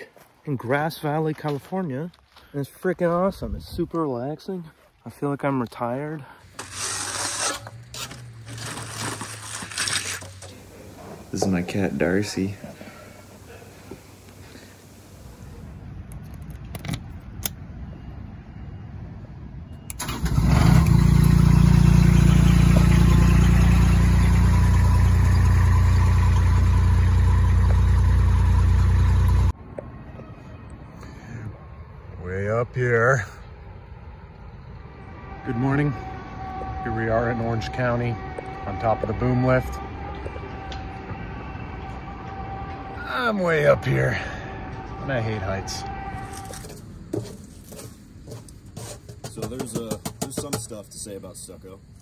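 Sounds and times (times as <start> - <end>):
engine starting and running: 6.4 - 14.9, 19.8 - 29.6
trowel scraping wet mortar: 6.5 - 10.7.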